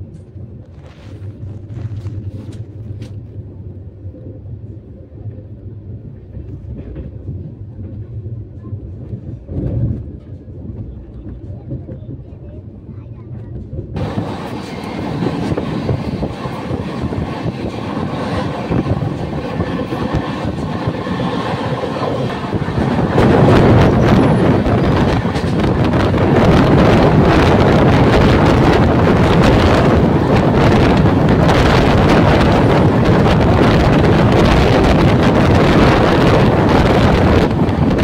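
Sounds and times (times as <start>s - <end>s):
train wheels rumbling on rails: 0.0s - 38.0s
rushing air: 14.0s - 38.0s.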